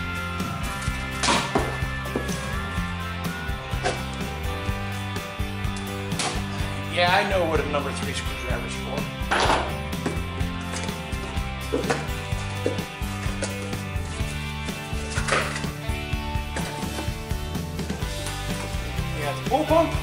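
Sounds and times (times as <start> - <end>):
background music low notes: 0.0 - 20.0.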